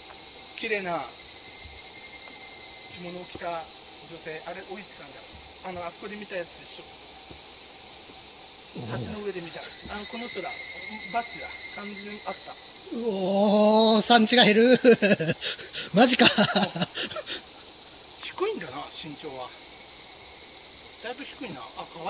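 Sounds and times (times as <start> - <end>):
cicadas droning: 0.0 - 22.0.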